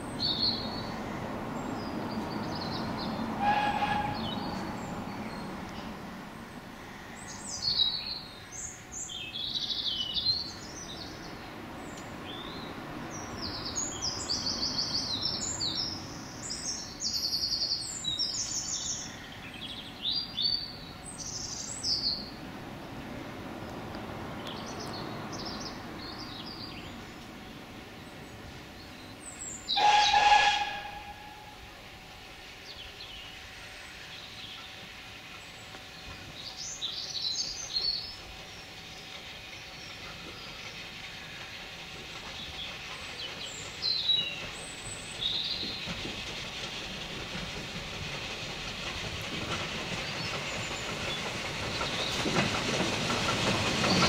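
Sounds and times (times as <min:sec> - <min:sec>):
birds singing: 0:00.0 - 0:06.0, 0:06.6 - 0:22.5, 0:24.4 - 0:54.0
steam locomotive rumble: 0:00.0 - 0:54.0
train whistle: 0:03.4 - 0:04.6, 0:29.7 - 0:31.7.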